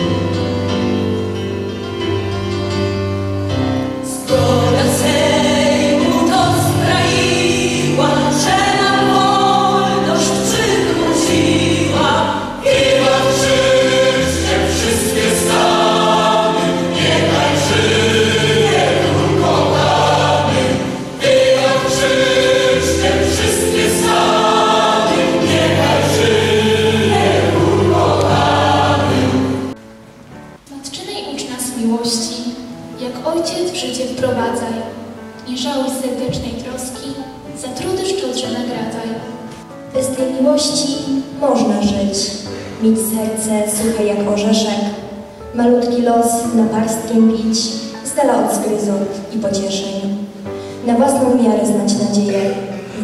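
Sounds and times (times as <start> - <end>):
choir singing long held chords: 4.0 - 29.8.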